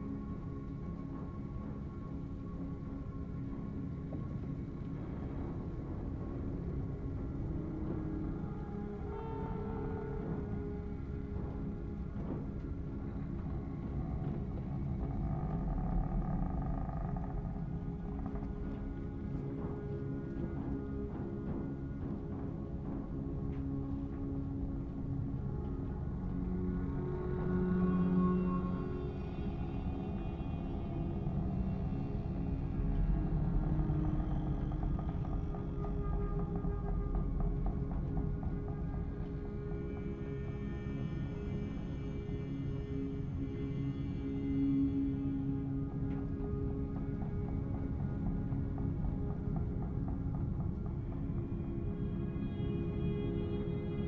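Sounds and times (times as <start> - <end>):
faint droning tones: 0.0 - 54.0
low rumble of turning drum: 0.0 - 54.0.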